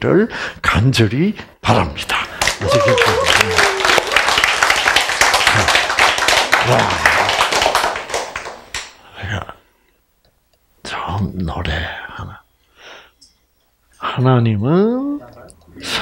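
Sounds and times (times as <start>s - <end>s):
audience applauding: 2.4s - 8.9s.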